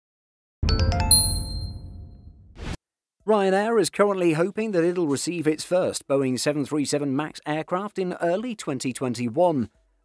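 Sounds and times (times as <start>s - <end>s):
bright ringing chime notes: 0.6s - 2.2s.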